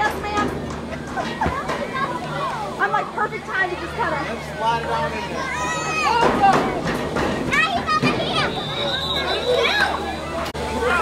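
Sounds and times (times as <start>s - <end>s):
children shouting: 4.4s - 6.8s, 7.5s - 11.0s.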